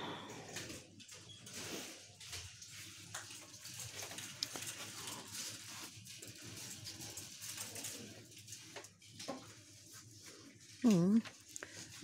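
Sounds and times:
faint shop background noise: 0:00.0 - 0:12.0.

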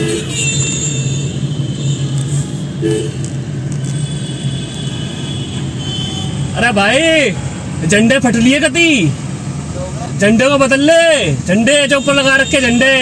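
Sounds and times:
car engine hum: 0:00.0 - 0:13.0
road noise: 0:00.0 - 0:13.0.

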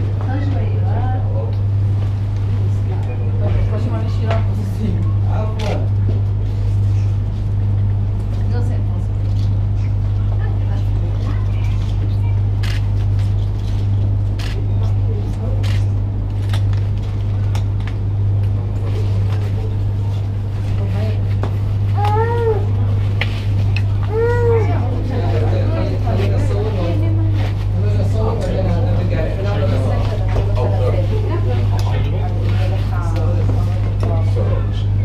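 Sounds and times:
steady low hum: 0:00.0 - 0:35.0
murmur of voices: 0:17.6 - 0:35.0.

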